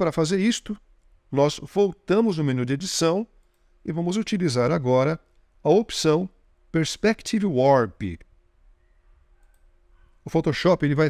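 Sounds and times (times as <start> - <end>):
low room hum: 0.0 - 11.0
computer mouse clicks: 9.4 - 9.7.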